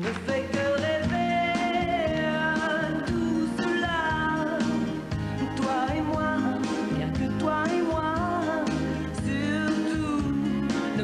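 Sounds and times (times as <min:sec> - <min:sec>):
pop song with band: 0:00.0 - 0:11.0.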